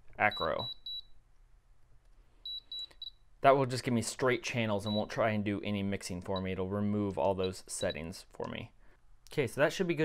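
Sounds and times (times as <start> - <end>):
short high-pitched beeps: 0.3 - 1.2, 2.4 - 3.2.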